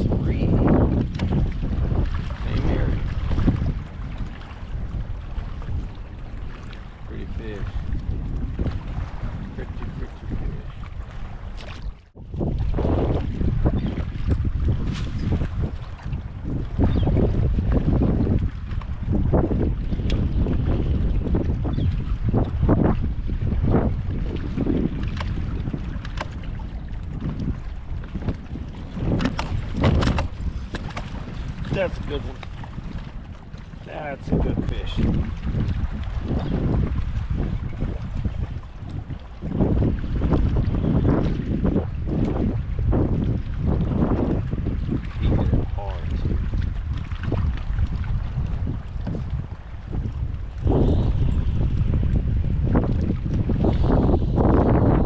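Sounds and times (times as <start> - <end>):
strong wind buffeting microphone: 0.0 - 55.0
water slapping against kayak hull: 0.0 - 55.0.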